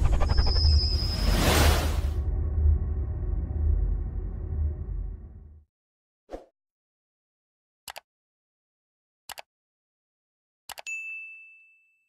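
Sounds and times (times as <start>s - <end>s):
notification bell ding: 10.9s - 12.0s.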